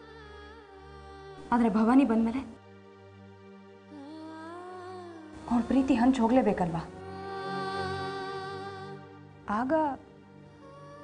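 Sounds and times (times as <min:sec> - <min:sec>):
soft drama background music: 0:00.0 - 0:11.0
woman speaking: 0:01.4 - 0:02.6, 0:05.3 - 0:07.0, 0:09.5 - 0:10.0.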